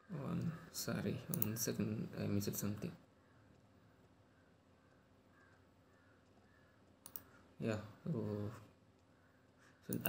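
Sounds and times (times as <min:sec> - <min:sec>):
computer clicks: 0:01.3 - 0:01.7, 0:04.9 - 0:07.4, 0:08.9 - 0:10.0.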